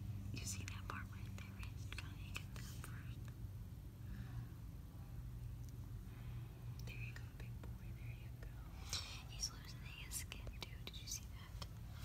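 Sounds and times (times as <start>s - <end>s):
low steady hum: 0.0s - 12.0s
soft whispering: 0.2s - 3.4s, 6.1s - 12.0s.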